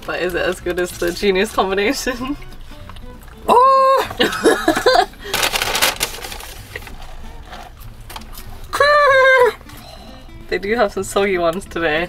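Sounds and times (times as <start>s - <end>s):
woman laughing: 3.5s - 5.4s, 8.8s - 9.6s.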